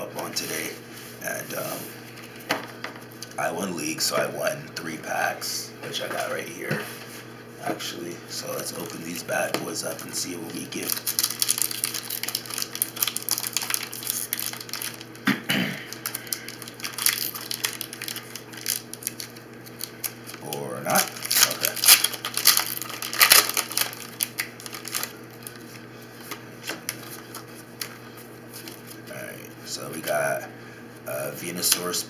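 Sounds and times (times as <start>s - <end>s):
foil wrapper tearing and crinkling: 9.8s - 15.2s, 15.9s - 27.9s.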